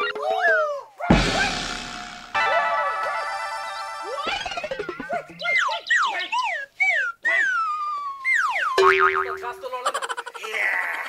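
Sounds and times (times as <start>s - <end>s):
cartoon boing sounds: 4.0s - 6.1s, 8.3s - 9.6s.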